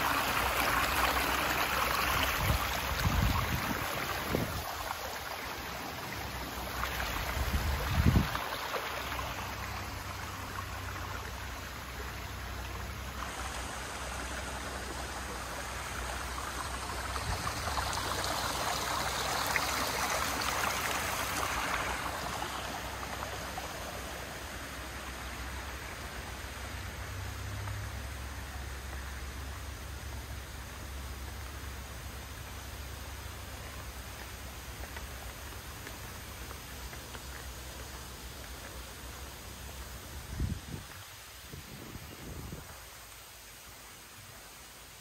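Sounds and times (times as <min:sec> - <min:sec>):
rushing water: 0:00.0 - 0:45.0.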